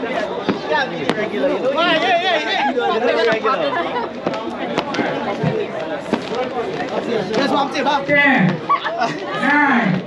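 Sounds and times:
people talking over each other: 0:00.0 - 0:10.0.

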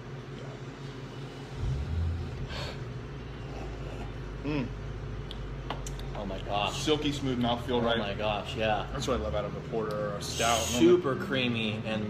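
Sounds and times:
low rumble: 0:01.5 - 0:03.2
person humming appreciatively: 0:03.6 - 0:04.8.

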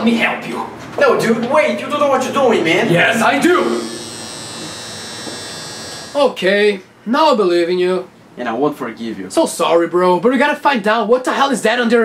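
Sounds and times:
electric hair trimmer buzzing: 0:03.6 - 0:06.2.

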